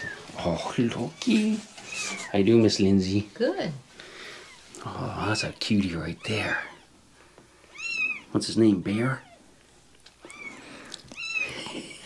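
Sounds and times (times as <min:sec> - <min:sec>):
kitten mewing: 0:10.2 - 0:11.9.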